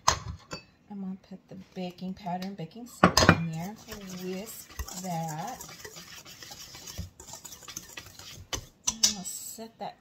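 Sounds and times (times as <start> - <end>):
wire whisk ticking on metal bowl: 3.7 - 9.2.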